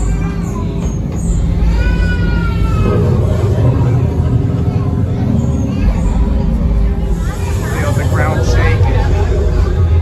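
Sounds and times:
low rumble: 1.3 - 10.0.

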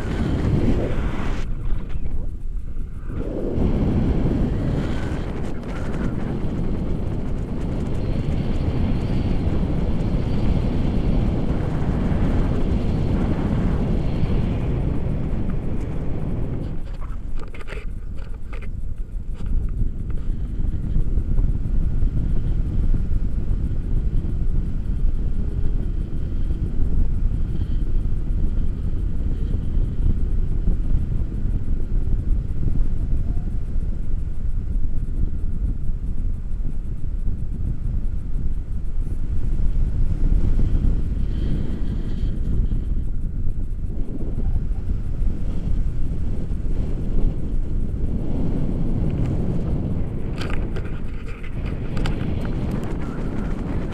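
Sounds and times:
wind rushing over microphone: 0.0 - 53.9.

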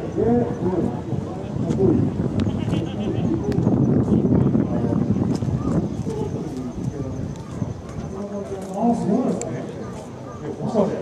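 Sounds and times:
people talking: 0.0 - 11.0
wind rumble on microphone: 0.0 - 11.0.

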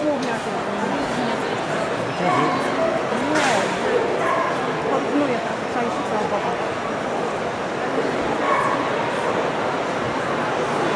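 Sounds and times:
murmur of indoor crowd: 0.0 - 10.9.

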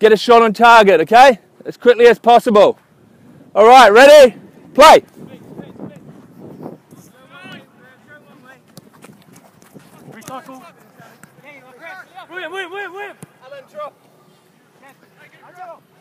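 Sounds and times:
distant shouts of footballers: 10.0 - 14.0.

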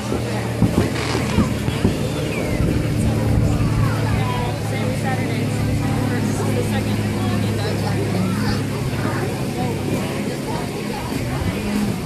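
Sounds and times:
engine humming: 0.0 - 12.0
people talking: 0.0 - 12.0.

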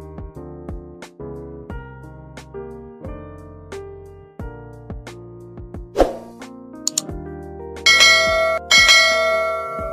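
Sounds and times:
background music with low bass: 0.0 - 9.9
bell chimes: 7.9 - 9.9.

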